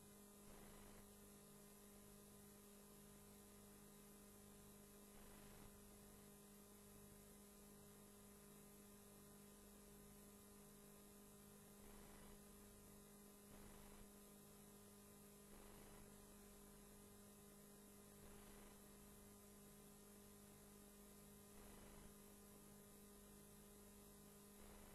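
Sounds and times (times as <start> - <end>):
faint electrical hum: 0.0 - 24.9.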